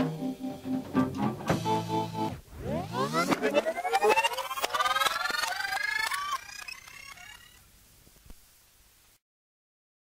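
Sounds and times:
synthesizer tones gliding upward: 0:02.0 - 0:07.6.

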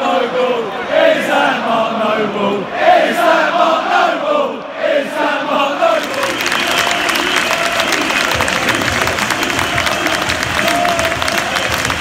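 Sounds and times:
crowd clapping: 0:05.8 - 0:12.0.

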